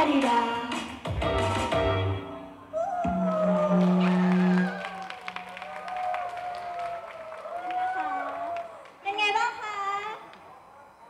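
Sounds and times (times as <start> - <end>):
pop backing track note: 0.0 - 4.7
audience clapping and cheering: 3.1 - 9.2.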